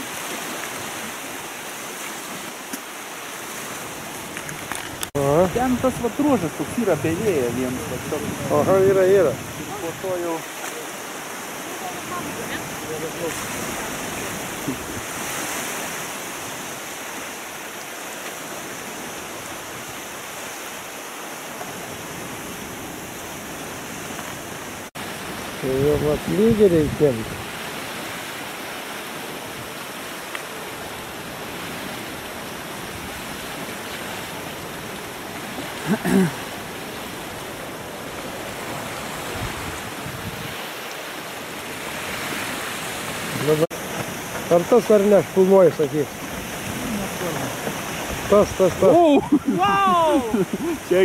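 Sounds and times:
choppy lake water: 0.0s - 51.0s
wind rushing: 5.2s - 10.2s
person's voice: 5.2s - 10.8s, 11.7s - 13.4s, 48.3s - 51.0s.

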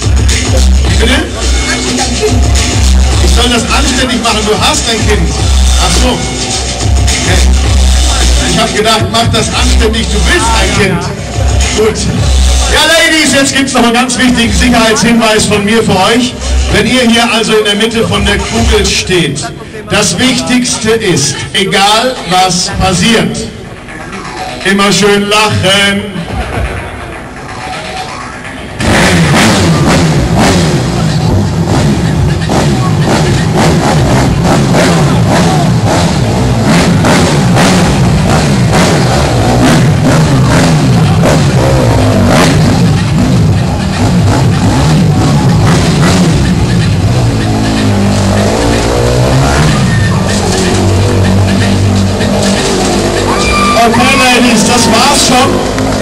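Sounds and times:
loud rock music with drums: 0.0s - 17.5s, 28.6s - 56.0s
motorcycle engine revving: 0.0s - 19.0s, 28.6s - 56.0s.

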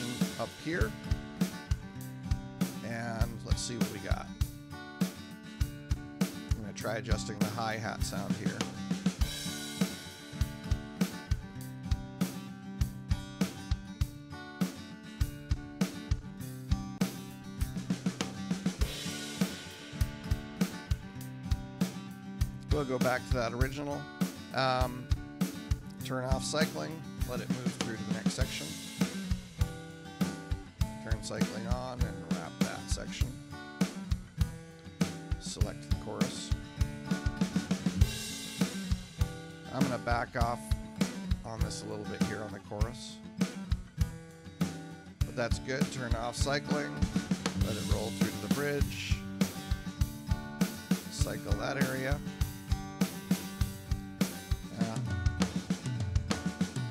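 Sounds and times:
guitar: 0.0s - 56.9s
rock drum beat: 0.0s - 56.9s.

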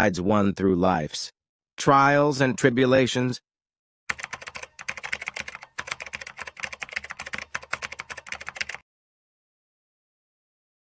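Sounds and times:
keyboard typing: 4.1s - 8.8s.

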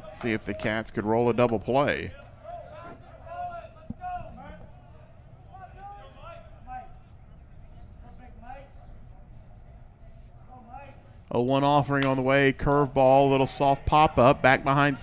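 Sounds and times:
faint background talk: 2.0s - 11.3s.

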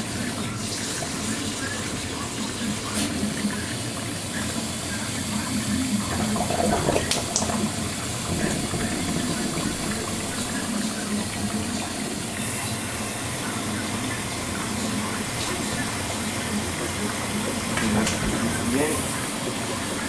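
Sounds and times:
water filling washing machine drum: 0.0s - 20.0s.

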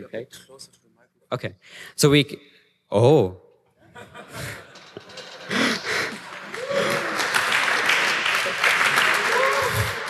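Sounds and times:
audience applauding: 5.5s - 10.0s.

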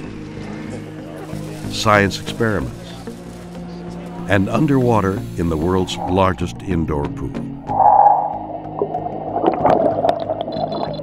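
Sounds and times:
background music: 0.0s - 11.0s
underwater bubbles gurgling: 7.6s - 11.0s.

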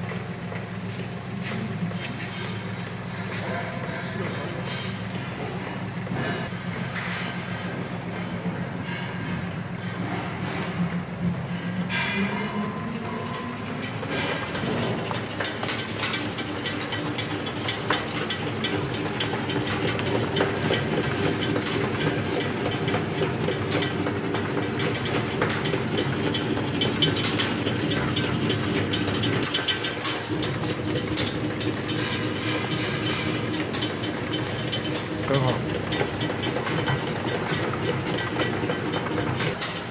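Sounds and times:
tablet press machine clatter: 13.3s - 39.9s.

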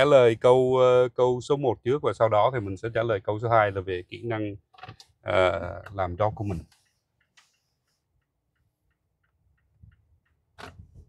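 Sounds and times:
turn signal ticking: 5.7s - 10.6s.

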